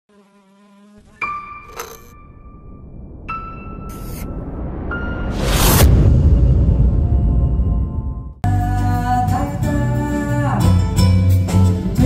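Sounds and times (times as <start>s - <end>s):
insect buzzing: 0.1s - 2.1s.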